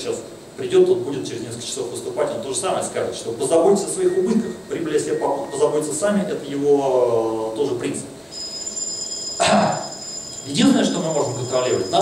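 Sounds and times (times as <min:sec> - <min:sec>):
high-pitched electronic tone: 0:03.7 - 0:06.5, 0:08.3 - 0:12.0.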